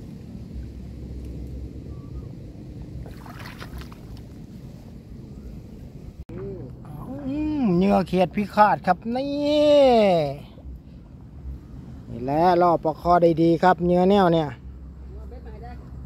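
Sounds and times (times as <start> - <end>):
low steady rumble: 0.0 - 16.0
splashing rustle: 2.9 - 5.0
water sloshing: 3.0 - 4.6.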